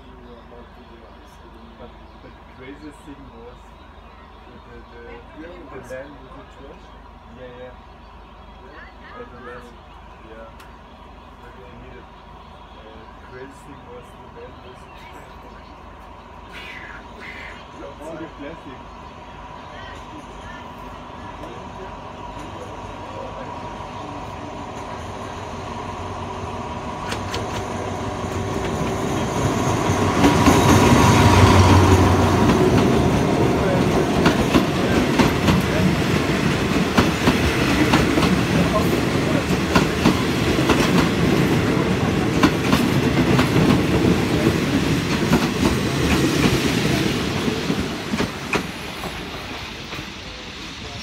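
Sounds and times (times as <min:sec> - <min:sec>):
diesel locomotive engine: 0:00.0 - 0:51.0
train wheels clickety-clack: 0:27.0 - 0:51.0.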